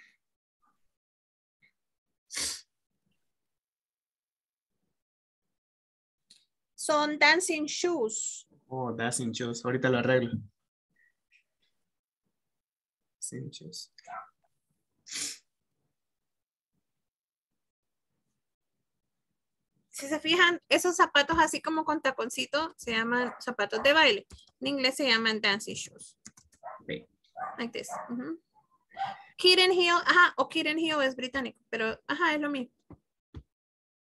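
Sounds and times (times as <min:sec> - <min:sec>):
short sharp breath burst: 0:15.1 - 0:15.5.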